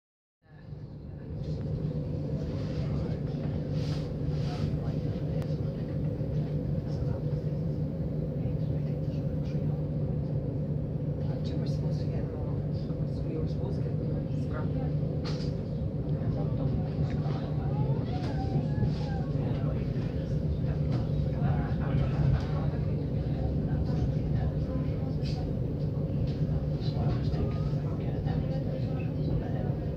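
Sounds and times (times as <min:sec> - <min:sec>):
constant low hum: 0:00.4 - 0:29.9.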